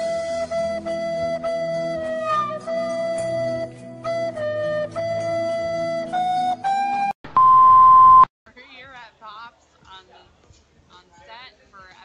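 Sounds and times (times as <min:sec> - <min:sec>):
steady bleep tone: 0:07.2 - 0:08.3.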